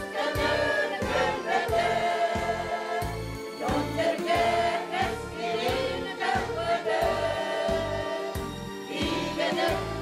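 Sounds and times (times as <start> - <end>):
women's choir singing: 0.0 - 10.0.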